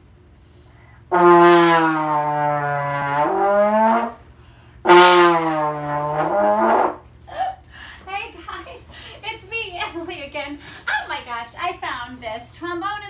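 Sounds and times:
trombone long low notes: 1.1 - 4.2, 4.8 - 7.0.

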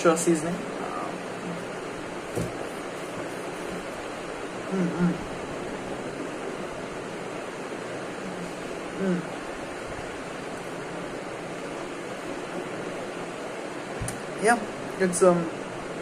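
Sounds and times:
steady background hiss: 0.0 - 16.0
man humming closed-mouth: 4.6 - 5.4, 8.2 - 9.4.

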